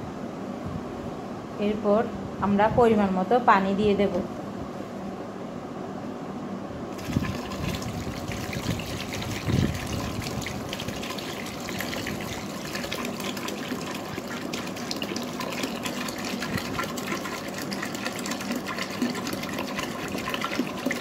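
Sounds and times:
water pouring into pot: 7.0s - 21.0s.

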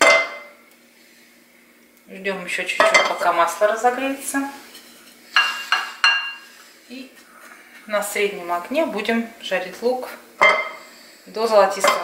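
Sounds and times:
utensil clinking against dishware: 11.8s - 12.0s.

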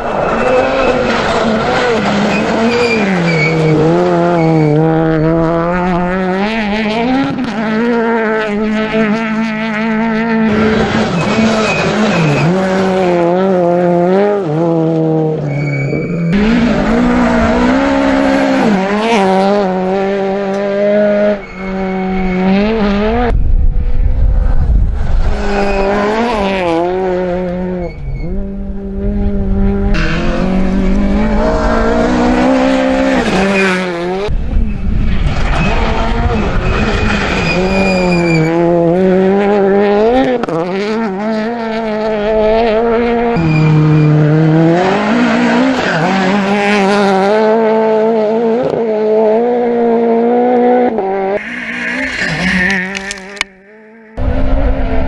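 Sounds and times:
rally car engine revving: 0.0s - 55.0s
tyres sliding on gravel: 10.5s - 12.9s.

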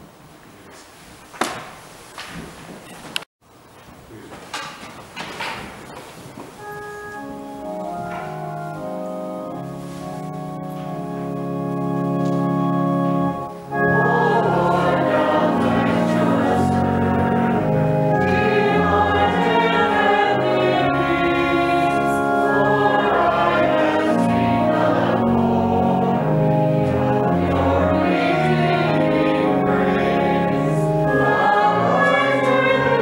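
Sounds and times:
organ playing: 6.6s - 33.0s
many voices singing a hymn: 13.7s - 33.0s.

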